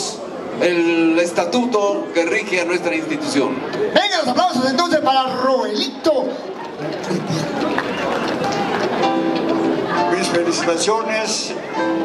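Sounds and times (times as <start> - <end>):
audience applauding: 6.5 - 10.6.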